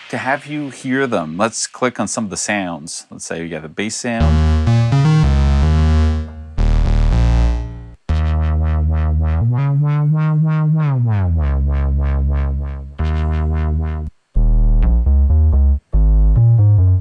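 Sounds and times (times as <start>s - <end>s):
pulsing wobble bass note: 4.2s - 17.0s
synthesizer bass notes: 4.2s - 17.0s.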